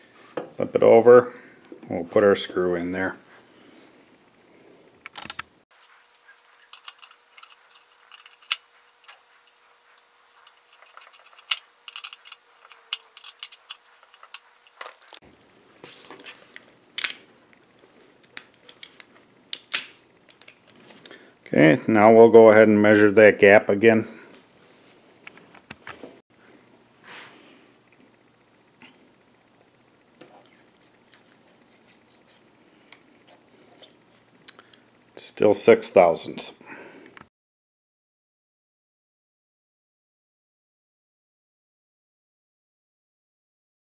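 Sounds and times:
screwdriver clicking on metal screw: 10.4 - 15.1.

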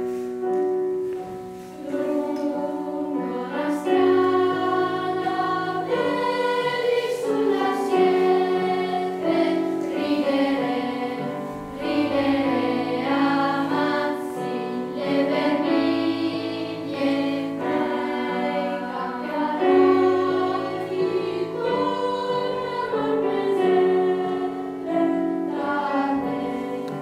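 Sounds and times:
piano accompaniment: 0.0 - 27.0
children's choir singing: 0.9 - 27.0.

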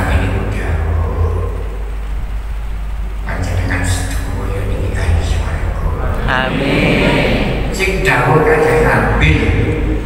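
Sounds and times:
low rumble: 0.0 - 10.0.

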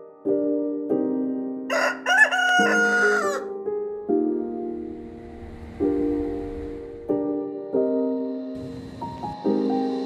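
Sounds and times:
piano chords: 0.0 - 10.0
rooster crowing: 1.7 - 3.5.

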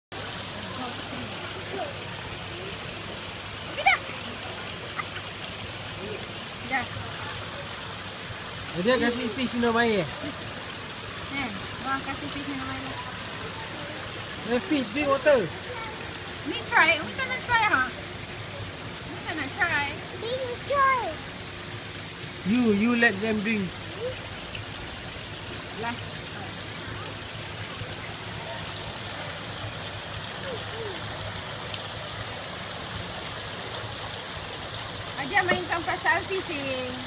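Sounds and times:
water trickling in a pond: 0.1 - 37.0
child's high-pitched vocal sounds: 15.7 - 16.1, 20.2 - 21.2, 23.9 - 24.3, 30.4 - 31.1.

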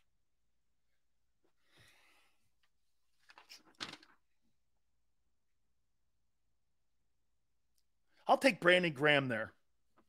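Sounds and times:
paper rustling: 3.2 - 4.2.

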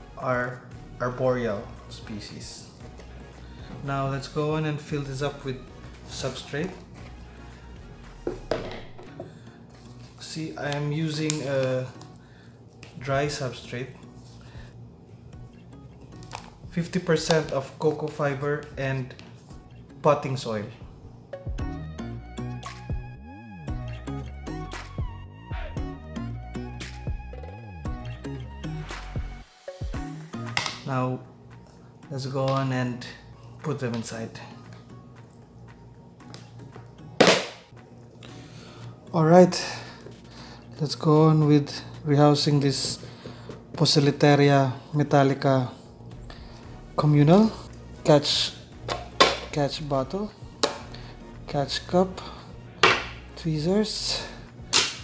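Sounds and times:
faint background music: 0.0 - 55.0
plastic cup knocking on plastic tub: 8.3 - 9.2.

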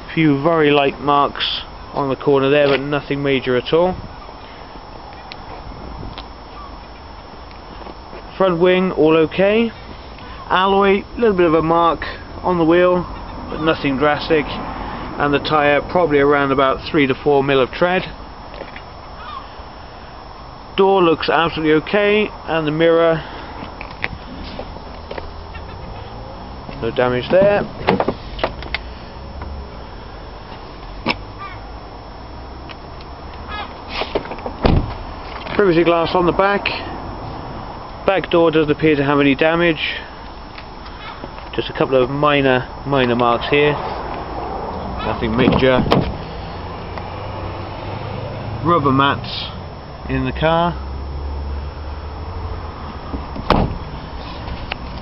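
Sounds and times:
faint short calls: 33.5 - 34.2.

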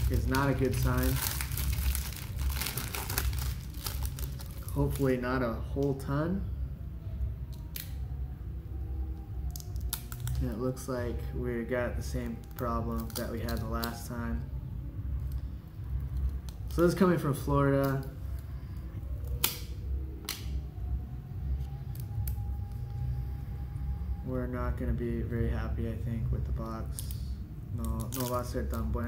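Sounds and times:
low steady hum: 0.0 - 29.0
cardboard cards snapping apart: 19.3 - 20.6.

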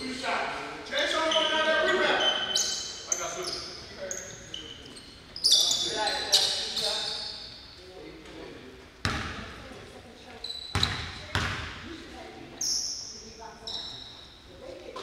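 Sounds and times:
sneakers squeaking on hardwood: 1.2 - 7.8, 10.4 - 11.8, 12.6 - 14.3.

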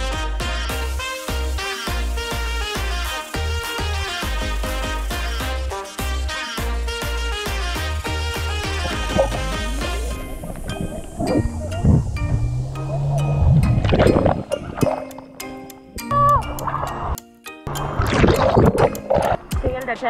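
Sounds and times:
background music: 0.0 - 20.0
water splashing and gurgling: 8.5 - 20.0.

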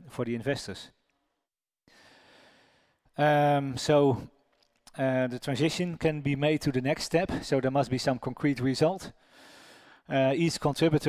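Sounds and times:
man breathing in: 1.9 - 3.1, 9.2 - 10.1.

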